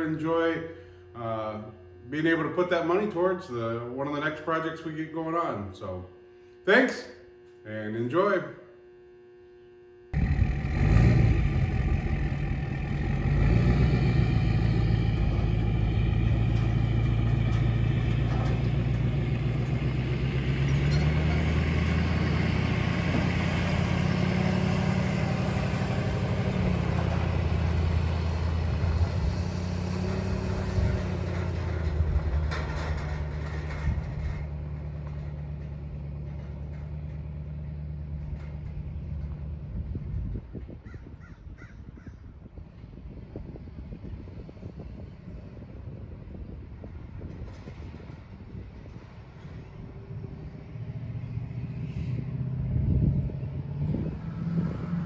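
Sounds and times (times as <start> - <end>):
truck engine accelerating past: 10.2 - 40.4, 43.6 - 55.0.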